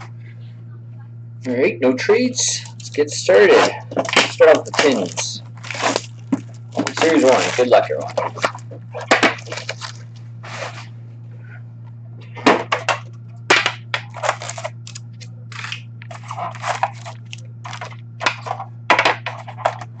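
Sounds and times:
steady low hum: 0:00.0 - 0:20.0
card packs crinkling: 0:02.6 - 0:10.9, 0:12.6 - 0:20.0.

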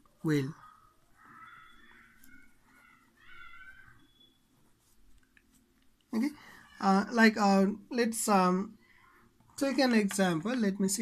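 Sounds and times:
faint drawn-out animal calls: 0:00.4 - 0:04.6.

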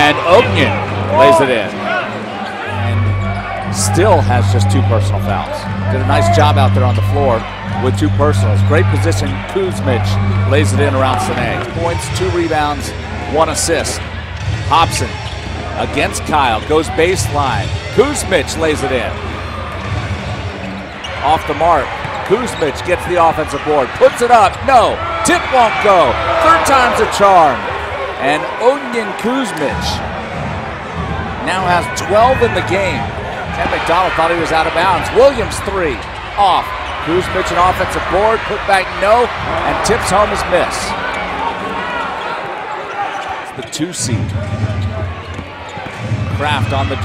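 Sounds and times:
crowd murmuring in arena: 0:00.0 - 0:47.0.

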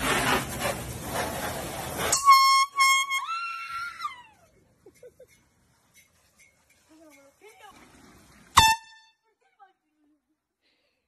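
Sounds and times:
loud air horn blast: 0:08.6 - 0:09.1.

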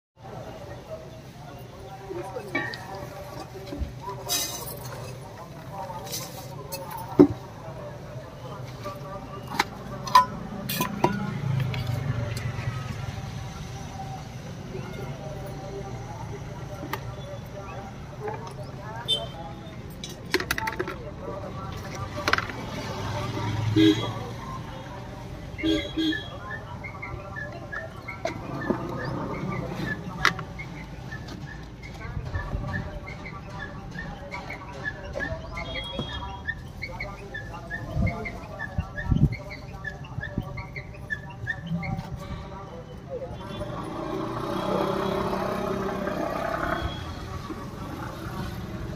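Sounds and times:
indistinct voices: 0:00.2 - 0:48.9
low traffic rumble: 0:00.2 - 0:48.9.

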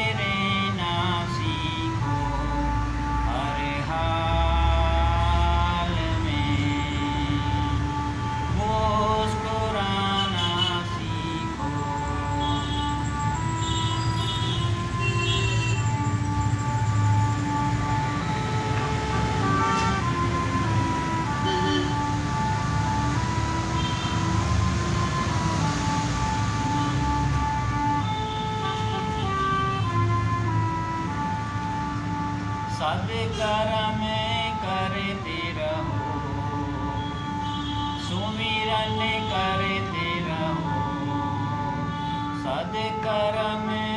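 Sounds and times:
harmonium melody: 0:00.0 - 0:43.9.

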